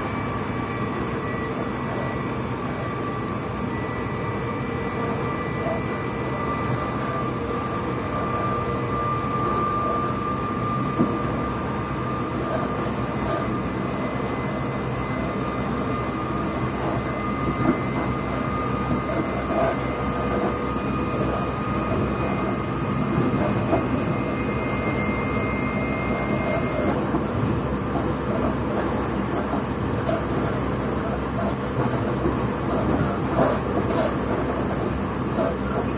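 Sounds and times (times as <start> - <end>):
high-pitched whine: 0.0 - 27.5
train wheels rumbling on rails: 0.0 - 35.9.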